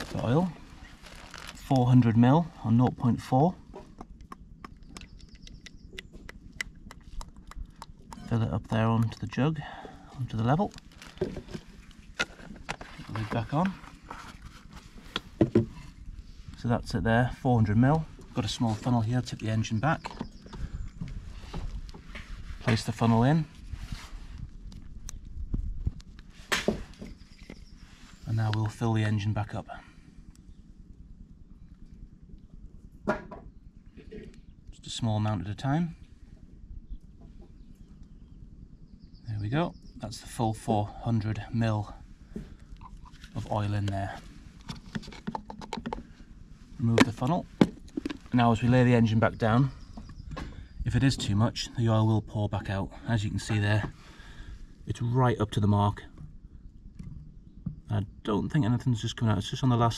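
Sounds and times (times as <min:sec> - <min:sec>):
low uneven rumble: 0:00.0 - 0:59.9.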